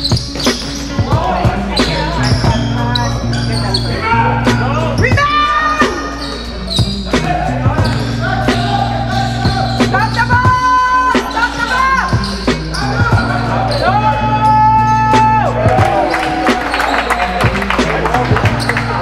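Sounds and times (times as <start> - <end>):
music with bass line: 0.0 - 19.0.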